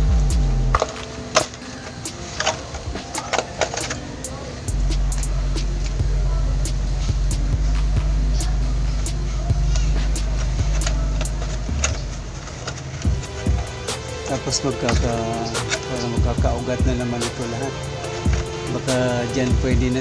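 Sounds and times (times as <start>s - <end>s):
low motor hum: 0.0s - 0.9s, 4.7s - 14.2s
plastic bottle crackling: 0.7s - 6.0s, 7.3s - 20.0s.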